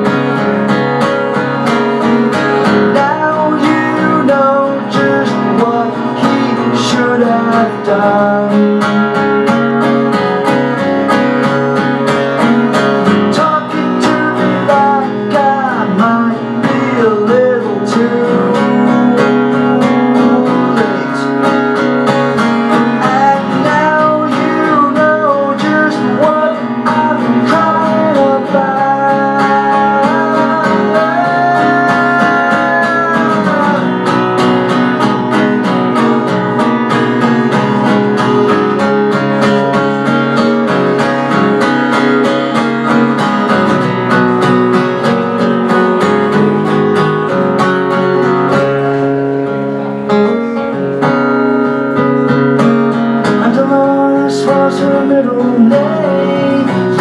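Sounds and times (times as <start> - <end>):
acoustic guitar strummed: 0.0 - 57.0
man singing: 2.3 - 9.8, 13.0 - 21.8, 22.7 - 34.4, 53.2 - 57.0.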